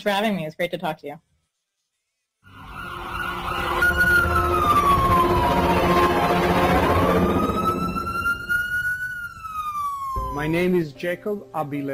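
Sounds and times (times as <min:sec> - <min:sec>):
wailing siren: 0:02.5 - 0:10.8.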